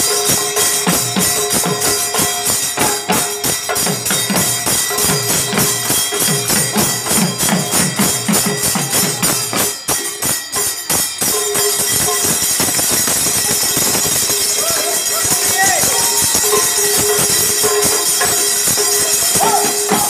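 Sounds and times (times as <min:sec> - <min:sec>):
barrel drums played fast: 0:00.0 - 0:20.0
jingling metallic wash: 0:00.0 - 0:20.0.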